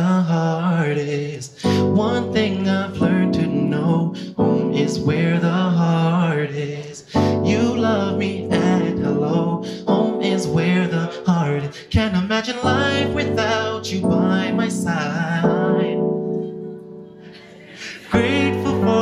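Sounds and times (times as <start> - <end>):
man singing: 0.0 - 16.2, 17.6 - 19.0
piano chords: 1.6 - 19.0.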